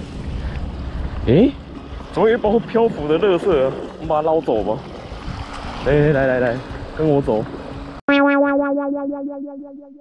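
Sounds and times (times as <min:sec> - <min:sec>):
pulsing electronic keyboard note: 0:08.1 - 0:10.0.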